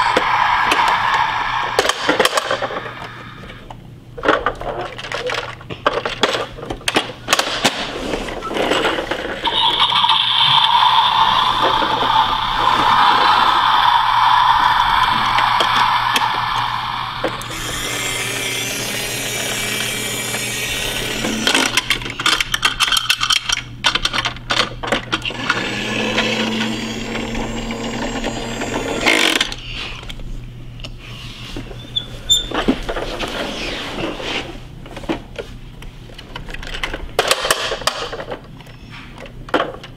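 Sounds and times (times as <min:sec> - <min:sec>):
toy truck electronic sound effect: 0:09.4 - 0:13.9, 0:14.5 - 0:21.8.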